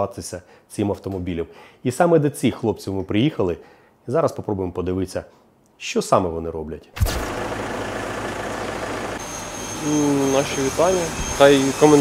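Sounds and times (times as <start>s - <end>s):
thin high whine: 7.1s - 12.0s
truck engine idling: 7.2s - 11.8s.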